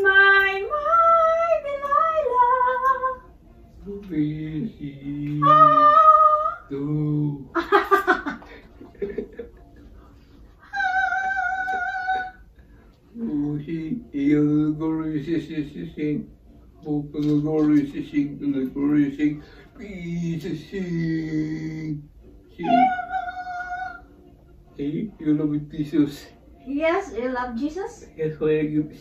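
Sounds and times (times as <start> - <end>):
laughter: 7.6 - 9.8
high-pitched held note like a meow: 22.6 - 23.0.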